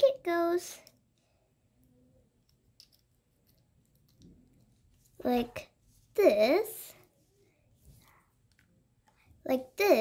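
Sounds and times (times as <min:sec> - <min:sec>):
plastic toy parts clicking: 0:02.4 - 0:04.3.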